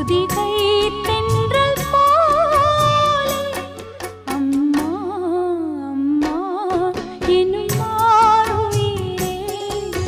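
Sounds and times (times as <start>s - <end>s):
soft musical accompaniment: 0.0s - 10.0s.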